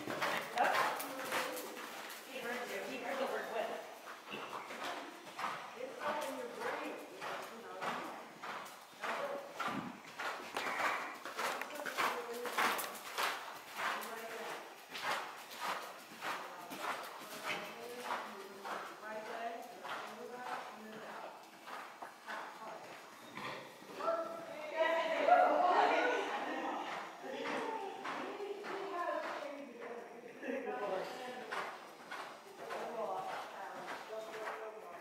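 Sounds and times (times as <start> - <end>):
horse hooves on soft sand: 0.0 - 25.4, 26.4 - 35.0.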